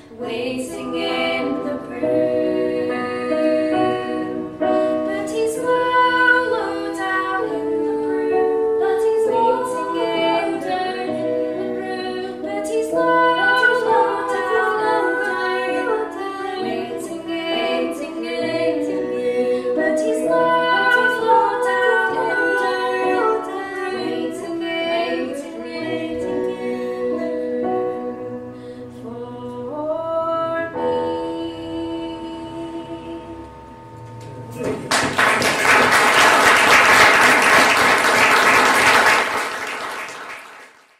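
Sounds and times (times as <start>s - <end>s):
electric keyboard accompaniment: 0.0s - 39.9s.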